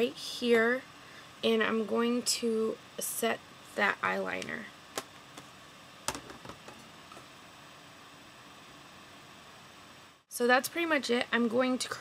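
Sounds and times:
faint room tone hiss: 0.0 - 12.0.

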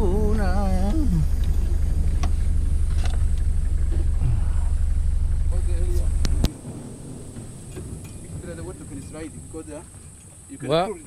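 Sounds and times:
engine rumble from inside cabin: 0.0 - 11.0
outdoor background: 0.0 - 11.0.

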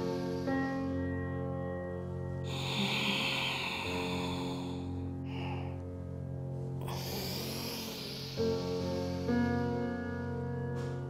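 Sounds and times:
deep breathing: 0.0 - 10.2
soft instrumental music: 0.0 - 11.0.

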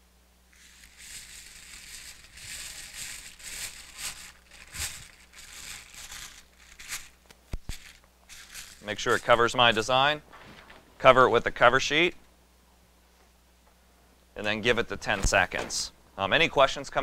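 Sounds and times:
foil crinkling and rustling: 0.5 - 10.8.

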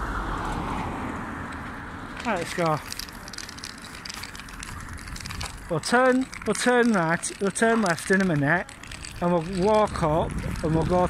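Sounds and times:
street rumble: 0.0 - 11.0
microphone handling crackle: 8.6 - 11.0.

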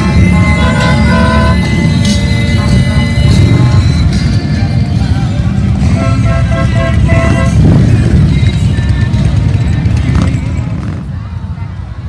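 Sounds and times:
music playing: 0.0 - 11.3
motorcycle engines passing: 0.0 - 12.0.

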